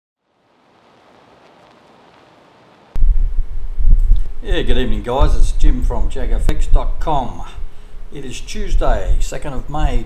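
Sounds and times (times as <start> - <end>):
faint microphone hiss: 0.2 - 10.0
microphone click: 3.0 - 4.4
loud uneven low rumbling: 3.0 - 10.0.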